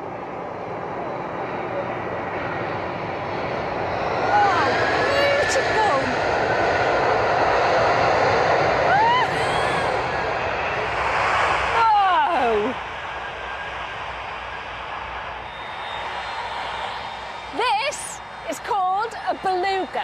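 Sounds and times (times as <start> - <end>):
jet engines at takeoff power: 0.0 - 20.0.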